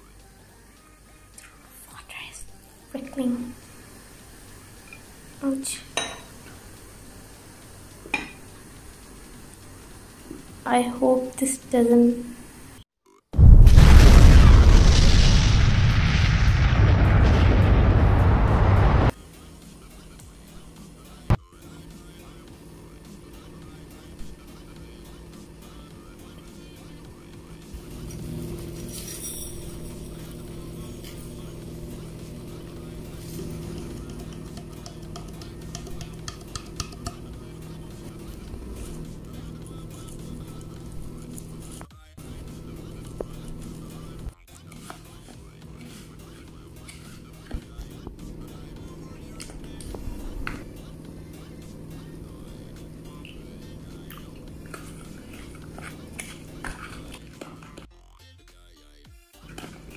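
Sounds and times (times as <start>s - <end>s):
soft background music: 0.0s - 12.1s
deep rumbling boom: 13.4s - 19.1s.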